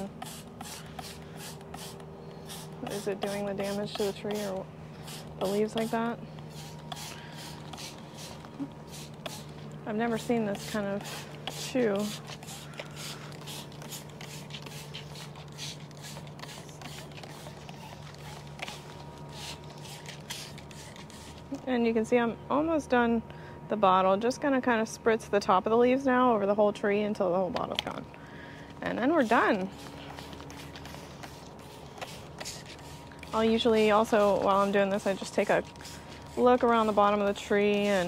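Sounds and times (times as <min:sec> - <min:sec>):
spray bottle spritzing: 0:00.0 - 0:21.4, 0:29.2 - 0:38.0
low steady hum: 0:00.0 - 0:38.0.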